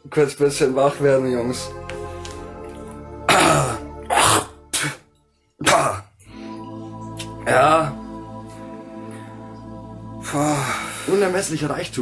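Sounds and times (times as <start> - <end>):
soft background music: 0.0 - 12.0
man coughing and hacking: 3.3 - 5.0, 5.6 - 6.2.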